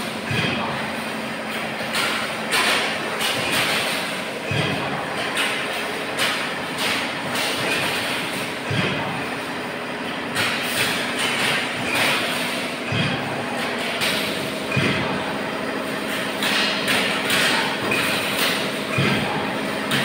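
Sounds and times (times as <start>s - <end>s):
heavy machine knocks: 0.0s - 20.0s
steady machine hum: 0.0s - 20.0s
weaving machine metallic clatter: 0.0s - 20.0s.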